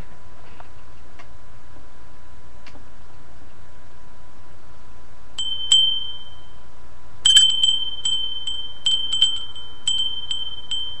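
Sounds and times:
faint steady tone: 5.3s - 11.0s
high-pitched metal chime strikes: 5.4s - 6.6s, 7.3s - 11.0s.

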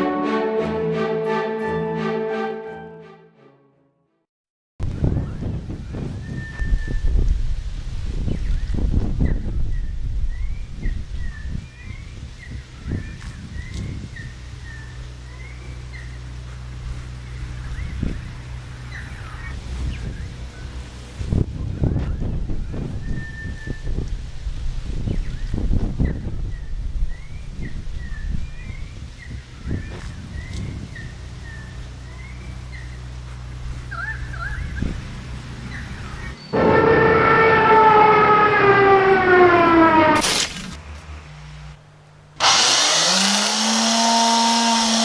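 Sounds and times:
birds chirping: 25.0s - 39.5s
low rumble: 31.1s - 41.8s.

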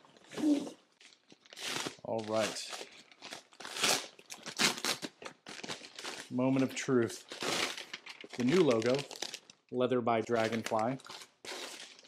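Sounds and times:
plastic mailer crinkling: 1.0s - 9.6s, 10.2s - 12.0s.

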